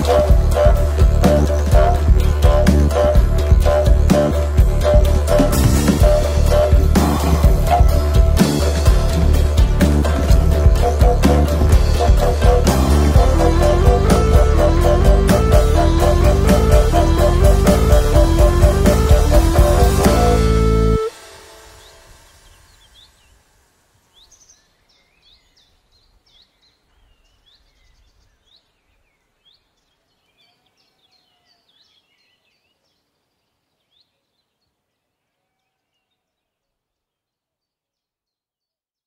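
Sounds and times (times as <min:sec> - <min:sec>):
music: 0:00.0 - 0:23.8.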